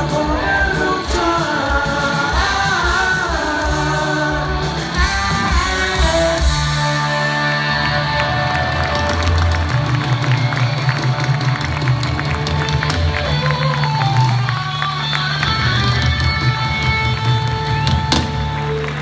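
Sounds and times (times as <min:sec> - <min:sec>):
live rock band: 0:00.0 - 0:19.0.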